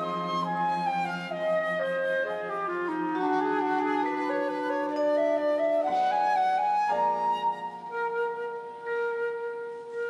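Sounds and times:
flute holding long note: 0:00.0 - 0:10.0.

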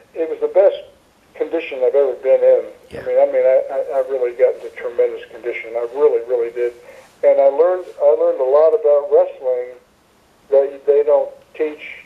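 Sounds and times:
man talking over a phone line: 0:00.2 - 0:09.8.

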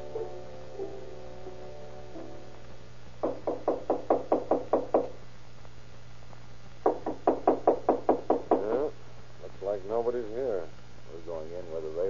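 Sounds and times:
rapid knocks on wooden door: 0:03.2 - 0:05.2, 0:06.8 - 0:08.8.

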